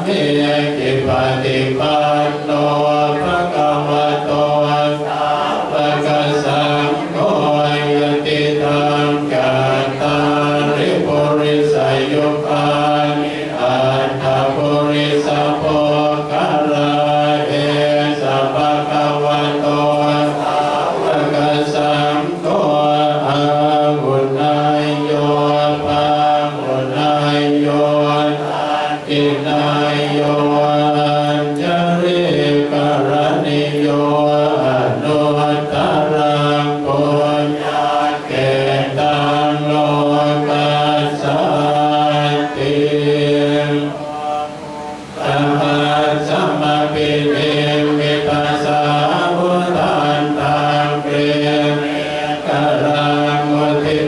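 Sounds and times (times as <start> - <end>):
monks chanting in unison: 0.0 - 54.0.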